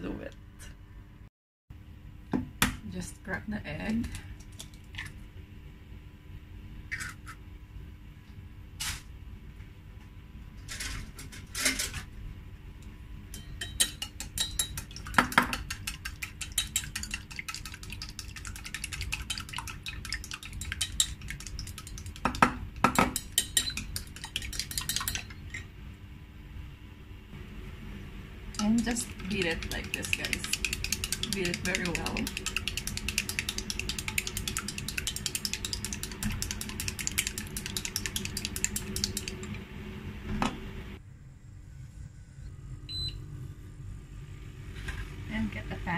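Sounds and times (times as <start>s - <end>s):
chopsticks clinking in metal bowl: 23.2s - 25.4s.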